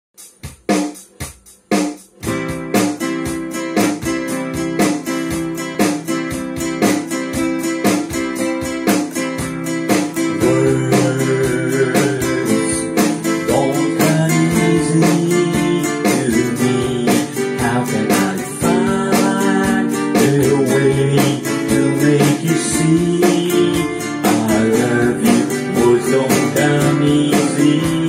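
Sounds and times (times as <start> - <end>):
classical guitar strumming: 2.2 - 28.0.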